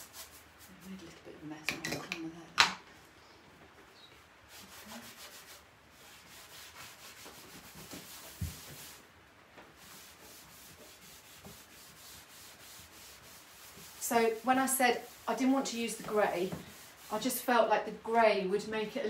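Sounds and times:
cloth rag rubbing on wood: 0:00.0 - 0:01.1, 0:04.5 - 0:09.1, 0:09.7 - 0:17.5.

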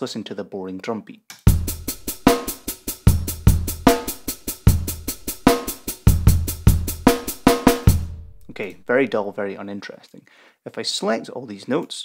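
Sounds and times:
programmed drum beat: 0:01.4 - 0:09.3.

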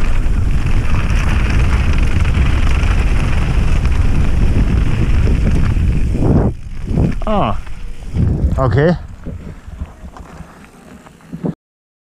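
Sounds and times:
tyres rolling over gravel: 0:00.0 - 0:11.5
wind buffeting microphone: 0:00.0 - 0:11.6.

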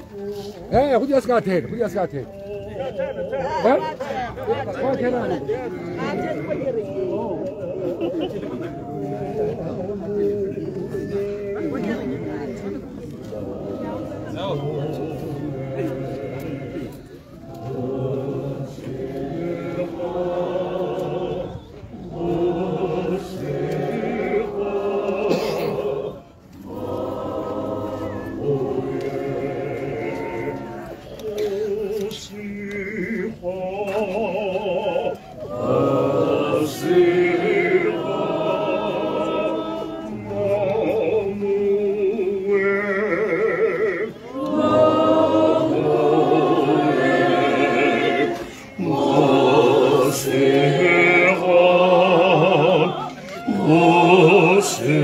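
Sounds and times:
crowd singing in chorus: 0:00.0 - 0:55.0.

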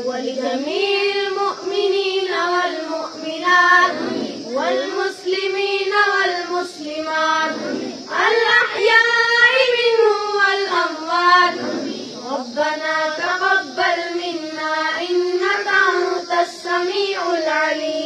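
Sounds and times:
boys chanting through microphone: 0:00.0 - 0:18.0.

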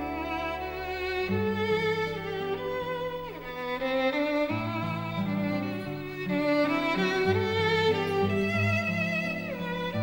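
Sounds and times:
low bowed strings: 0:00.0 - 0:10.0
violin melody: 0:00.0 - 0:10.0.

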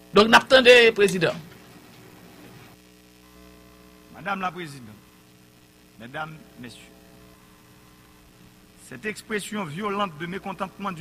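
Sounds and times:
electrical hum: 0:00.0 - 0:11.0
man speaking: 0:00.1 - 0:01.5, 0:04.1 - 0:05.0, 0:06.0 - 0:06.9, 0:08.8 - 0:11.0.

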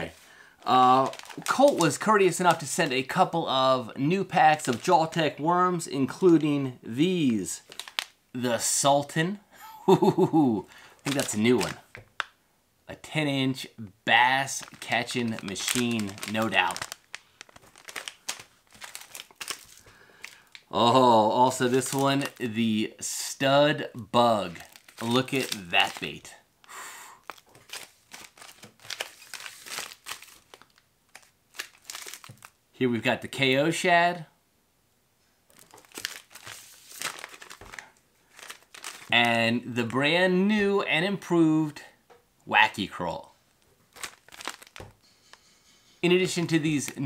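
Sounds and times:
plastic bags crinkling: 0:00.0 - 0:03.2, 0:04.5 - 0:05.2, 0:07.5 - 0:08.2, 0:10.9 - 0:12.3, 0:14.4 - 0:22.6, 0:24.4 - 0:32.6, 0:35.5 - 0:40.0, 0:43.6 - 0:45.5, 0:46.2 - 0:47.0.

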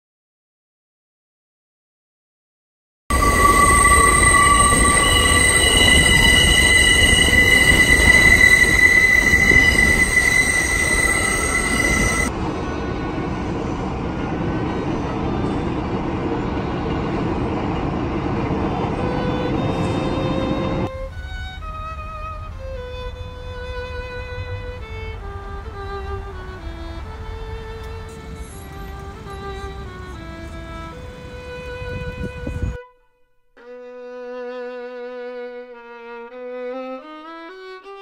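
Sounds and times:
train wheels squealing: 0:03.1 - 0:13.0, 0:18.8 - 0:21.5, 0:25.8 - 0:30.5
train rumbling: 0:03.1 - 0:32.8
string music: 0:03.1 - 0:38.0.

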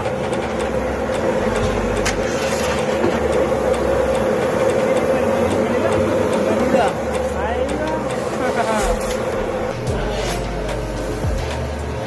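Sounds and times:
gas oven roaring: 0:00.0 - 0:12.0.

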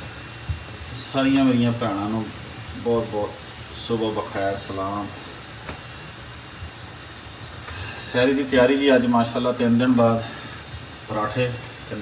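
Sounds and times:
food sizzling on a griddle: 0:00.0 - 0:12.0
tea simmering in a pan: 0:00.0 - 0:12.0.

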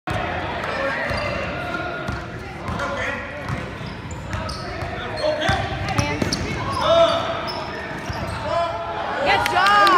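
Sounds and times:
sneakers squeaking: 0:00.1 - 0:08.8
voices in a gym: 0:00.1 - 0:09.9
basketball bouncing on gym floor: 0:02.1 - 0:06.8.

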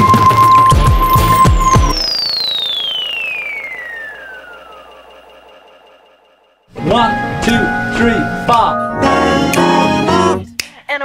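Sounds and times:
high electronic tone gliding down: 0:00.0 - 0:10.0.

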